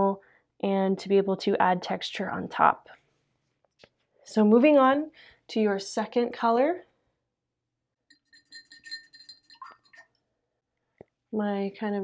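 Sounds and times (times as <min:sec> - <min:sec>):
paintbrush tapping glass jar: 0:08.1 - 0:10.1.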